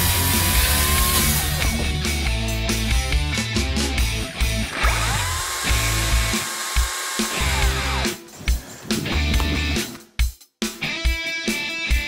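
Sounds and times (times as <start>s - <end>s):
cordless chainsaw motor whining: 0.0s - 1.7s, 4.6s - 8.0s
rock music: 0.0s - 12.0s.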